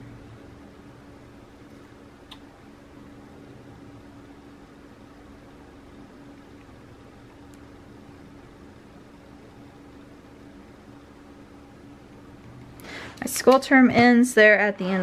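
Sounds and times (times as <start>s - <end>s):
faint hum and hiss: 0.0s - 15.0s.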